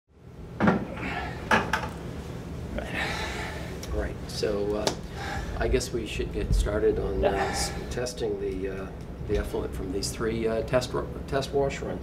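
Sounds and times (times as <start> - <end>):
low room hum: 0.1 - 12.0.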